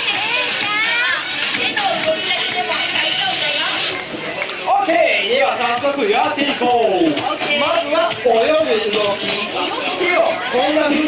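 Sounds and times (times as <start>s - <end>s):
children calling out: 0.0s - 2.4s
show music: 0.0s - 11.0s.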